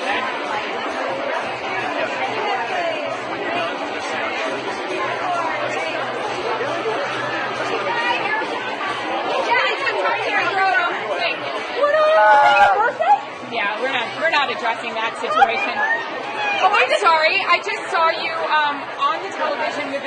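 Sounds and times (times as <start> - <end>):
crowd babble: 0.0 - 20.0.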